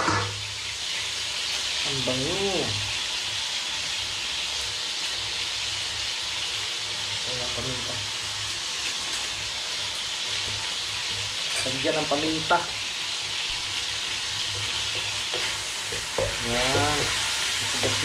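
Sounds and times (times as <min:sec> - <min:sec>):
meat sizzling in hot oil: 0:00.0 - 0:18.0.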